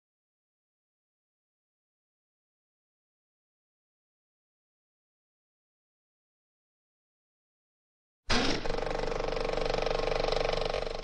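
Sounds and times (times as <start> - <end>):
steady whir: 8.3 - 11.0.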